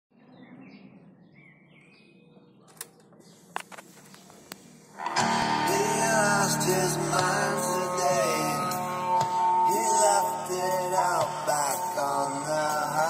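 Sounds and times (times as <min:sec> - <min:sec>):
loud music from boombox: 0:05.0 - 0:13.0.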